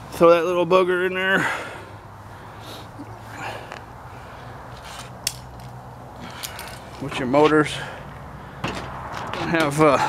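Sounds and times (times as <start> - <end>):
shuffling and handling noises: 4.7 - 7.6.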